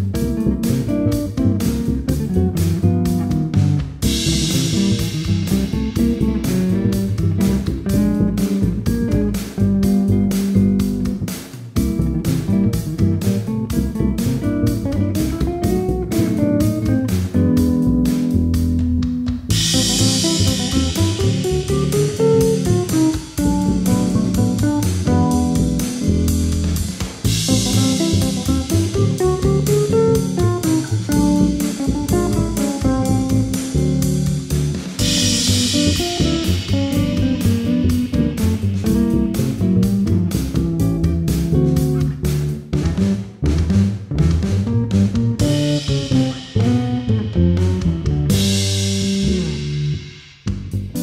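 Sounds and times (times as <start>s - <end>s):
funky jazz on basses: 0.0s - 51.0s
steady drum beat: 0.0s - 51.0s.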